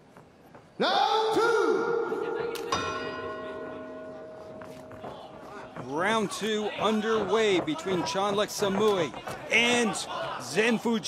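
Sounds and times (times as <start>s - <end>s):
boxing ring bell ringing: 2.5s - 7.0s.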